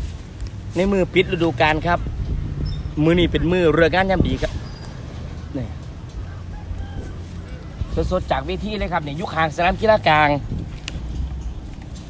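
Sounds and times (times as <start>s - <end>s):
wind on microphone: 1.6s - 4.8s, 10.2s - 12.0s
distant rooster crowing: 6.1s - 8.8s.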